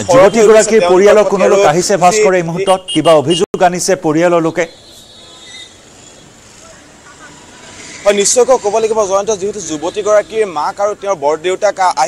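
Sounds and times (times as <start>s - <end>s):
distant street traffic: 0.0s - 12.0s.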